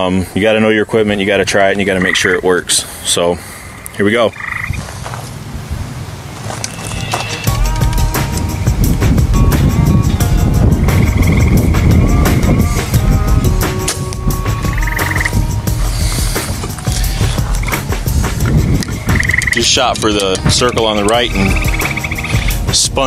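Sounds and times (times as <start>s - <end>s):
frogs trilling: 1.5s - 2.6s, 3.4s - 4.8s, 6.6s - 7.6s, 10.8s - 12.9s, 14.6s - 18.0s, 18.7s - 22.7s
wind rumble: 3.7s - 23.0s
microphone handling: 6.4s - 20.6s
bow and arrow clicks and knocks: 18.4s - 21.2s.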